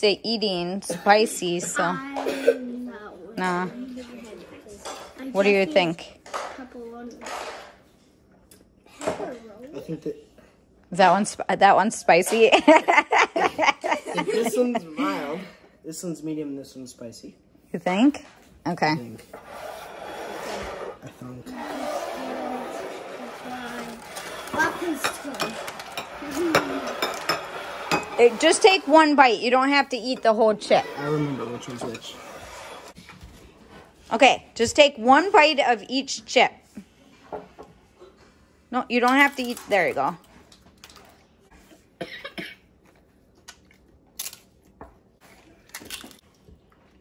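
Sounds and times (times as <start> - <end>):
child crunching tortilla chip: 43.5 - 44.6, 45.6 - 46.2.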